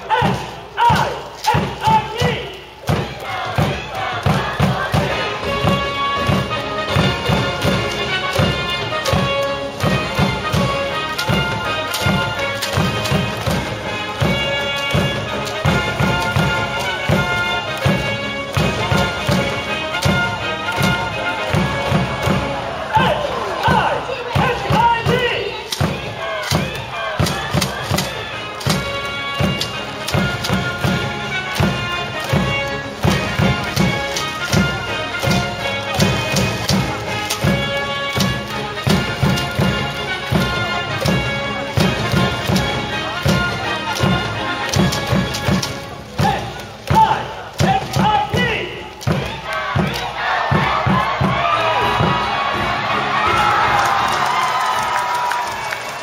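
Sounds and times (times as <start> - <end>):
crowd chanting: 0.0 - 6.8, 20.6 - 29.3, 49.2 - 56.0
drum beating: 0.0 - 56.0
trumpet-like horn melody: 3.2 - 23.0, 26.2 - 46.5.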